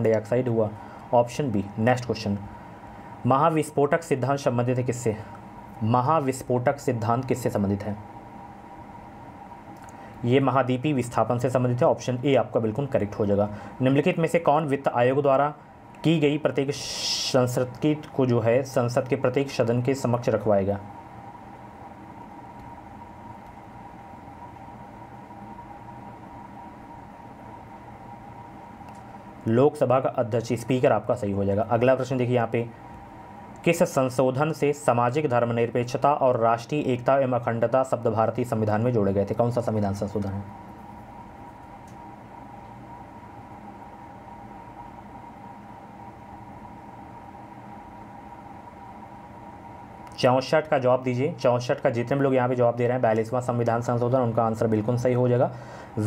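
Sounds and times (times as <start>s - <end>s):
background hum and hiss: 0.0s - 56.0s
faint high whine: 0.0s - 56.0s.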